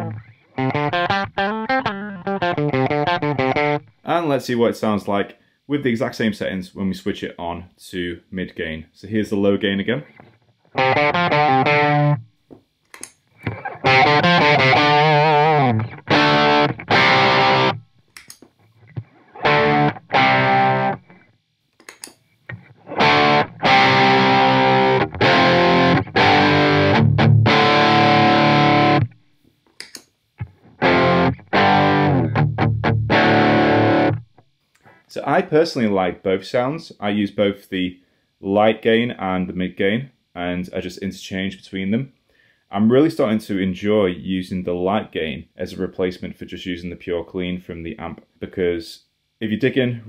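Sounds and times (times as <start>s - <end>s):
distorted electric guitar power chords: 0.0s - 3.9s, 10.8s - 12.2s, 13.4s - 17.8s, 18.9s - 21.2s, 22.5s - 29.2s, 30.4s - 34.3s.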